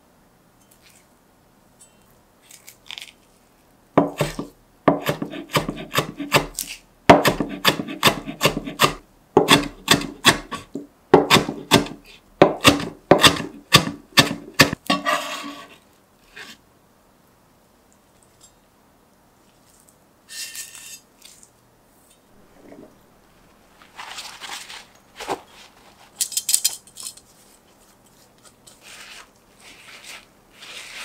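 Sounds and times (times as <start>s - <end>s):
knife chopping on cutting board: 4.0s - 15.2s
scraping: 22.3s - 31.0s.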